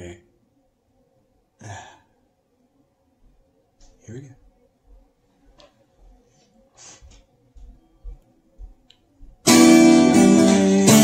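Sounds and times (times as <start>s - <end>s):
person sighing: 1.6s - 2.2s.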